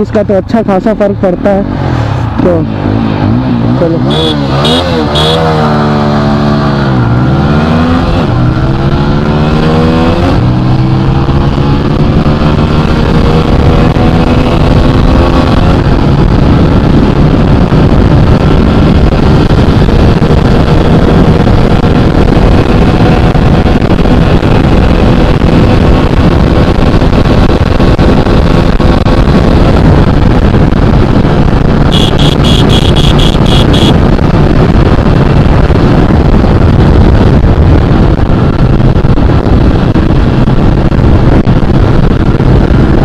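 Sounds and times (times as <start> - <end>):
motorcycle engine accelerating: 1.4 - 43.0
wind rush on microphone: 5.1 - 43.0.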